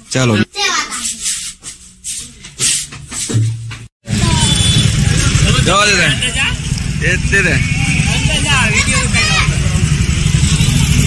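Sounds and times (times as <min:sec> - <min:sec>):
children calling and chattering: 0:04.1 - 0:11.0.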